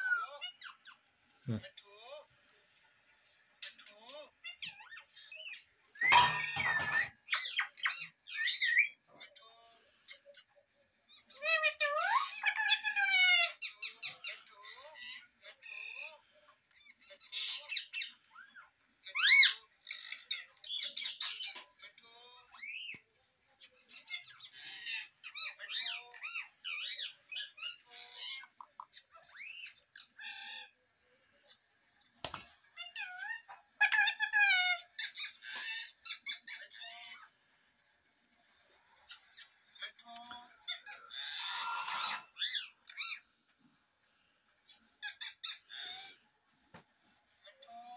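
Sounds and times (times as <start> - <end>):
parrot squawking and chirping: 0.0 - 1.8, 3.6 - 23.0, 23.6 - 31.7, 32.8 - 37.3, 38.9 - 43.4, 44.6 - 46.3
parakeet calls: 40.7 - 43.2.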